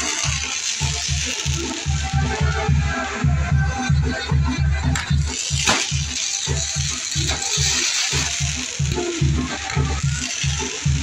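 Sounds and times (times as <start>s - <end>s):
hiss of fireworks sparks: 0.0s - 3.3s, 4.8s - 11.0s
music with fast bass beat: 0.0s - 11.0s.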